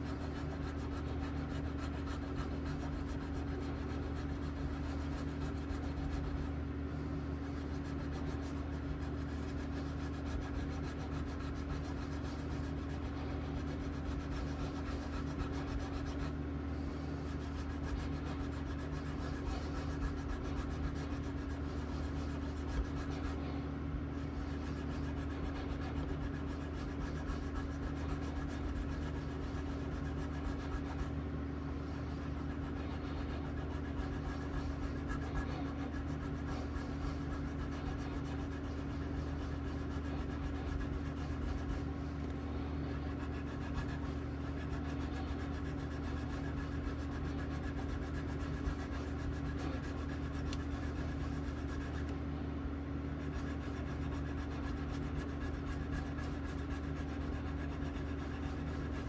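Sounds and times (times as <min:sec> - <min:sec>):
constant low hum: 0:00.0 - 0:59.0
abrasive rubbing on metal frets: 0:32.0 - 0:41.8.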